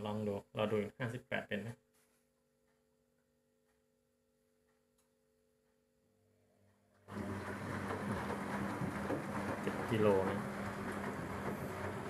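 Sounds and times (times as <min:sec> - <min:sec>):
washing machine drum motor humming: 0:07.0 - 0:12.0
water and laundry sloshing: 0:07.1 - 0:12.0.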